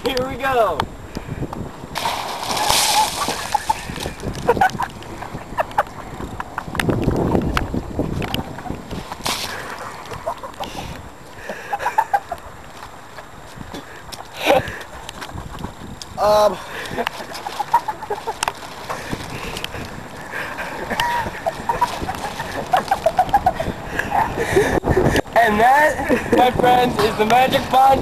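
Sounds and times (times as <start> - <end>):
water splashing on plastic poncho: 2.0 - 4.5.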